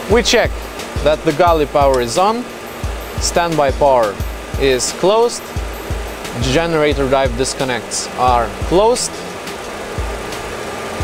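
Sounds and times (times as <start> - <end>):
steady whirring cockpit noise: 0.0 - 11.0.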